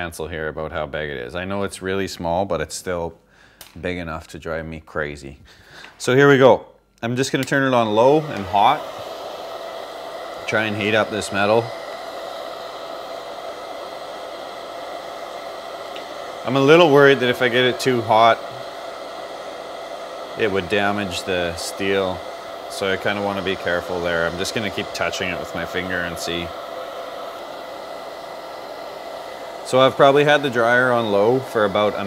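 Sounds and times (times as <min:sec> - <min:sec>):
hair dryer blowing: 0:07.4 - 0:32.0.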